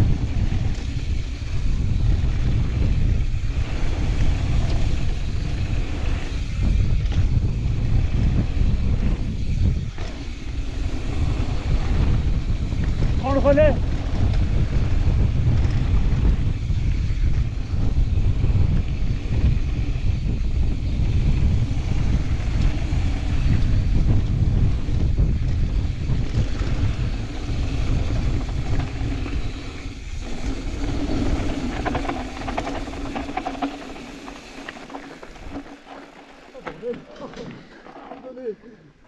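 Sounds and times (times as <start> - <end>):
wind buffeting microphone: 0.0 - 37.0
tyres rumbling over dirt: 21.6 - 38.6.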